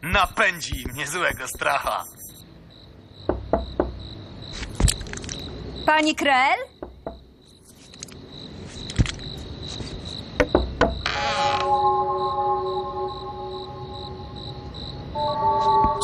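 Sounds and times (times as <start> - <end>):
crickets chirping: 0.0 - 16.0
sustained music chord: 11.7 - 16.0.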